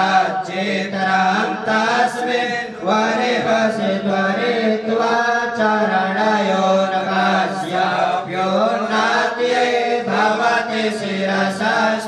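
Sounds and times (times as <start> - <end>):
group chanting: 0.0 - 12.0.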